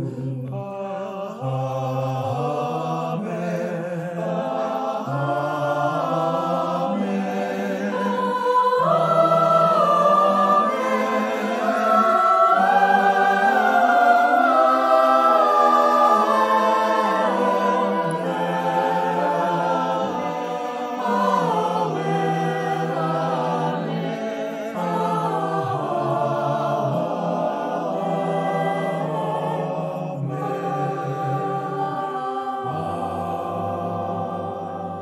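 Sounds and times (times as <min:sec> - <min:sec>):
mixed choir singing: 0:00.0 - 0:35.0.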